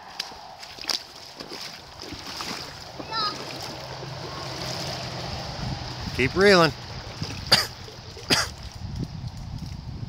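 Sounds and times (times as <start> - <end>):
person coughing: 7.5 - 7.7, 8.3 - 8.6.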